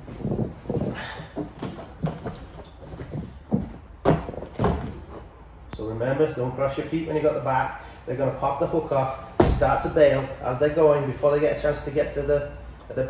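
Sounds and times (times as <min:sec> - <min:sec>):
thumps and knocks on mats: 0:00.2 - 0:05.2, 0:09.4 - 0:10.2.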